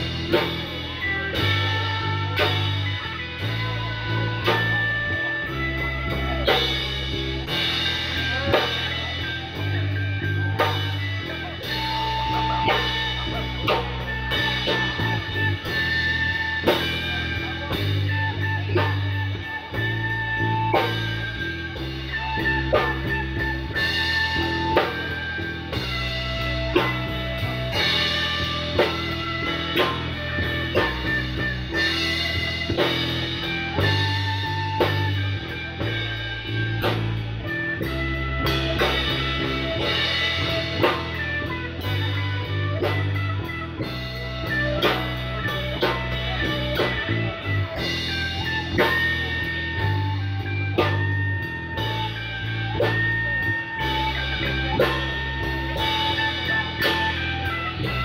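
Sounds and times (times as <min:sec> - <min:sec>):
blues trio playing instrumental: 0:00.0 - 0:58.0.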